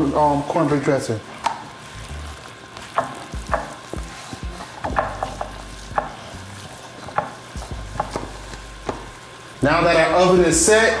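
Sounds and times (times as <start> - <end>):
taps and knocks on baking dish: 4.8 - 6.2, 7.0 - 9.1.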